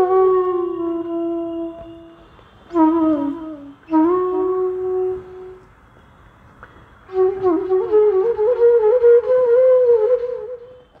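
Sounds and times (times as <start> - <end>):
flute playing slow melody: 0.0 - 11.0.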